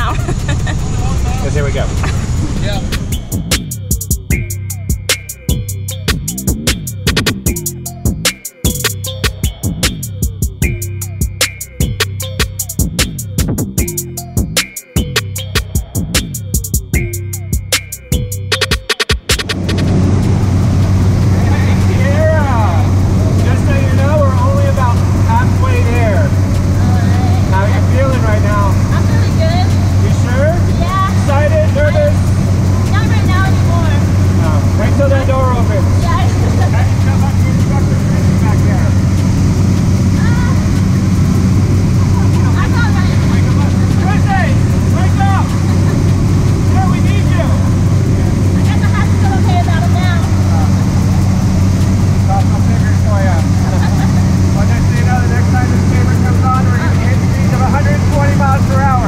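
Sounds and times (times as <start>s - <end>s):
plane engine and propeller drone: 0.0s - 3.8s, 19.3s - 59.0s.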